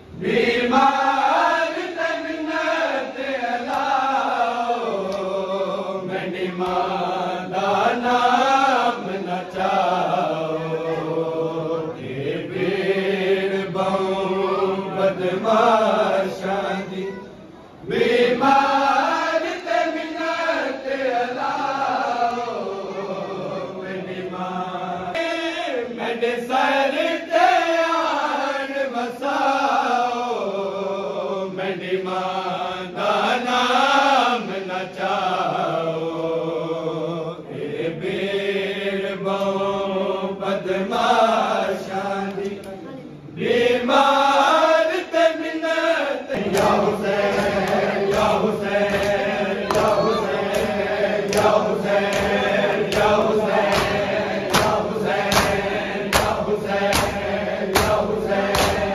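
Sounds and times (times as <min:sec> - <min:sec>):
men chanting a lament: 0:00.1 - 0:58.9
hand slaps on chest: 0:46.4 - 0:58.9.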